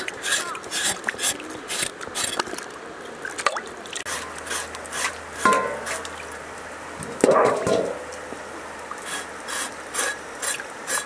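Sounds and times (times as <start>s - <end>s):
water splash: 0.0s - 6.4s
flowing river water: 0.0s - 11.0s.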